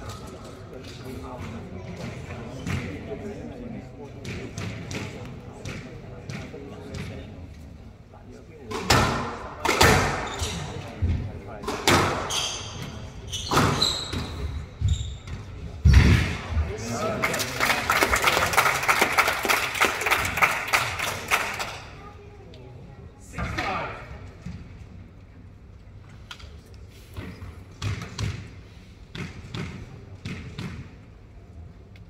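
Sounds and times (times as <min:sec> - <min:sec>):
spectators talking: 0:00.0 - 0:24.4
spectators clapping: 0:16.8 - 0:22.0.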